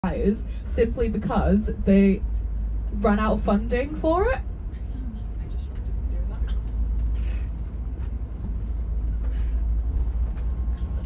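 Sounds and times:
bus engine rumble: 0.0s - 11.0s
road noise: 0.0s - 11.0s.

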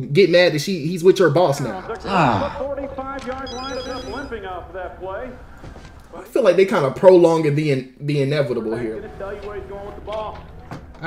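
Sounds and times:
phone ringing electronic trill: 3.4s - 4.4s.

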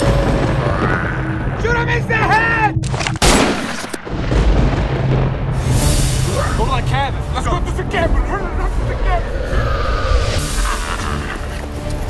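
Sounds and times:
pistol shot: 3.2s - 4.1s.

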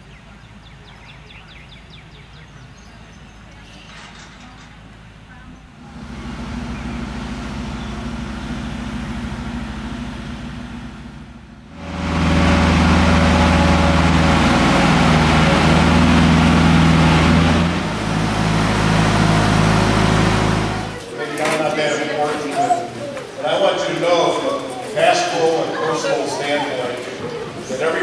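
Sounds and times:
engine deep hum: 0.0s - 21.2s.

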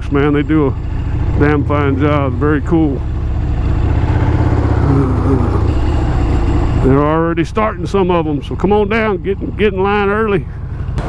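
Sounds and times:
motorcycle engine at low speed: 0.0s - 11.0s.

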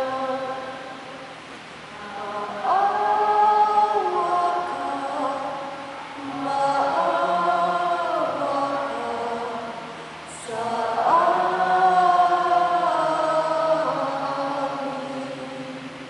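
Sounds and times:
church choir singing: 0.0s - 0.8s, 2.0s - 16.0s.

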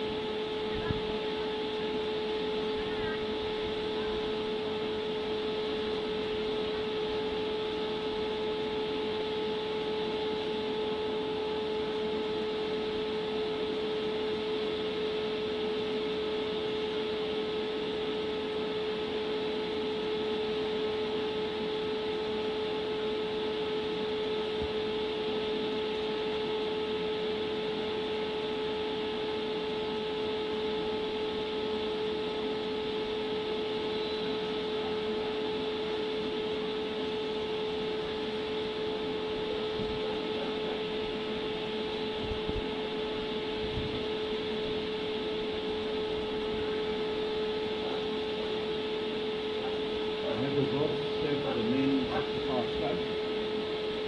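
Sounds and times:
machine hum with whine: 0.0s - 54.0s.

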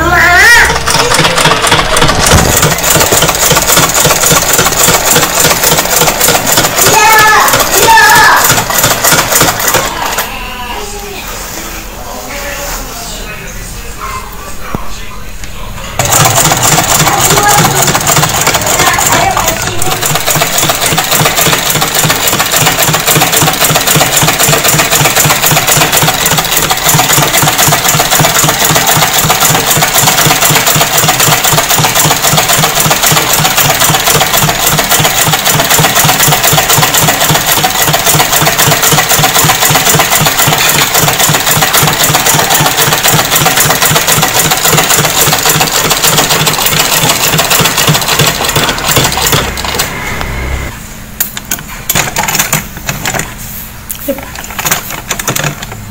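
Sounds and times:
sewing machine clattering: 0.0s - 10.3s, 16.0s - 49.9s, 51.3s - 53.4s, 54.1s - 55.9s.

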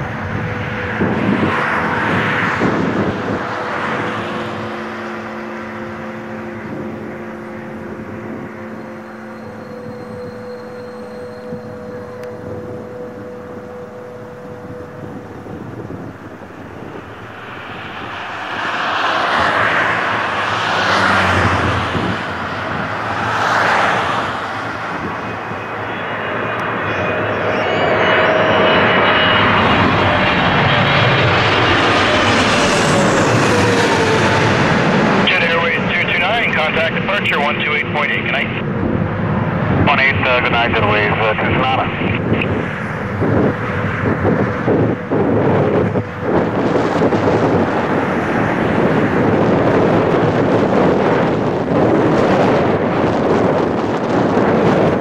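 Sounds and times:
jet airliner roaring overhead: 0.0s - 55.0s
jet engine whine: 0.0s - 55.0s.

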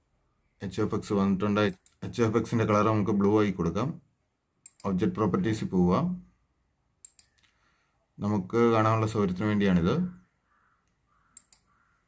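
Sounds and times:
computer mouse clicks: 4.6s - 4.9s, 7.0s - 7.6s, 10.8s - 11.8s.

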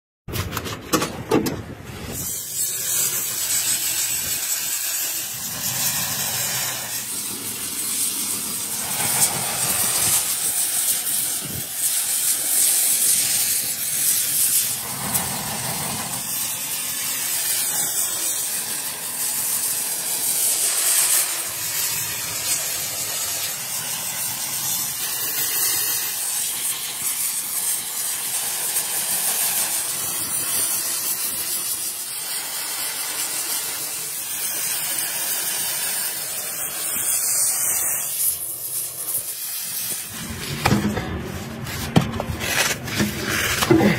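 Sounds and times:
gas torch flame hissing: 1.9s - 43.9s.

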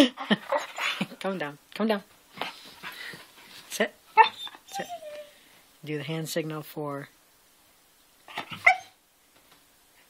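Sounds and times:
puppy barking: 8.4s - 9.0s.

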